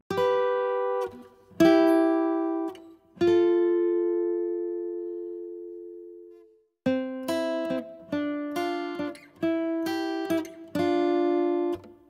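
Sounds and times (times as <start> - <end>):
acoustic guitar chord ringing: 0.1 - 12.0.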